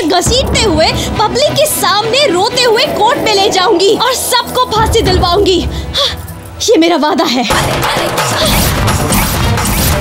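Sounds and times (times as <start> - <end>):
dramatic film score: 0.0 - 10.0.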